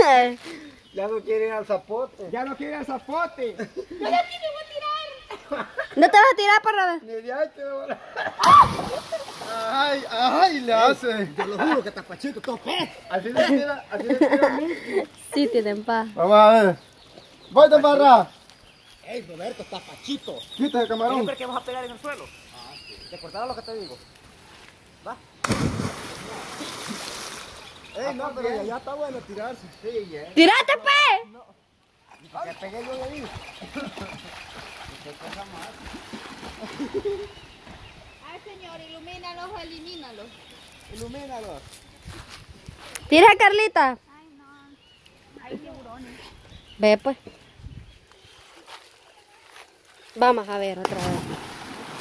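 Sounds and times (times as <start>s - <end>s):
faint outdoor background noise: 0.0s - 52.0s
person splashing into water: 8.4s - 9.6s, 25.4s - 27.6s, 50.8s - 52.0s
water churning: 50.9s - 52.0s.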